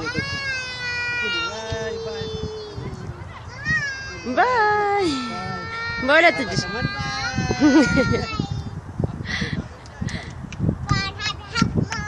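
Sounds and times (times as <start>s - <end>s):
child's high-pitched squeal: 0.0s - 8.8s.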